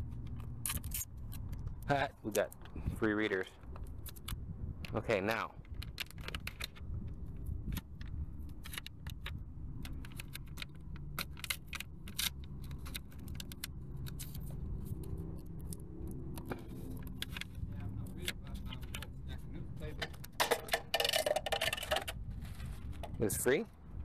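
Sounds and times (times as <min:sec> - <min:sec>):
tape crackling and clicking: 0:00.0 - 0:02.8, 0:03.5 - 0:23.2
low engine rumble: 0:00.0 - 0:24.0.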